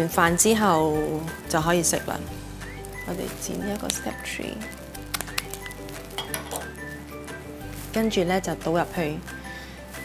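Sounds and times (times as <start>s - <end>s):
soft background music: 0.0s - 10.0s
metal clinking against glass: 6.2s - 6.7s.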